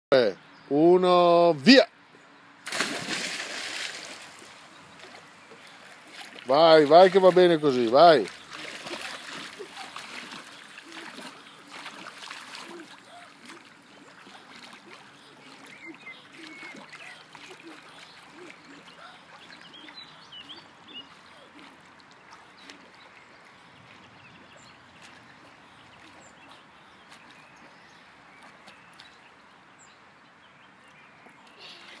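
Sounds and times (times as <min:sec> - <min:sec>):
child diving into pool splash: 0:02.6 - 0:05.2, 0:08.5 - 0:13.6
water sloshing and splashing: 0:02.6 - 0:29.3
bird chirps: 0:15.1 - 0:21.7.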